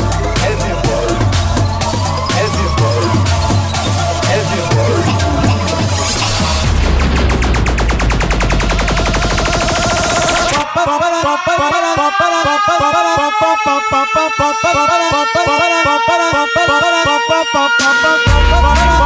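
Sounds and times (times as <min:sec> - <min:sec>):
heavy bass: 0:00.0 - 0:10.7, 0:18.3 - 0:19.0
repeating synth melody: 0:00.0 - 0:19.0
fast stuttering drum roll: 0:00.3 - 0:10.6.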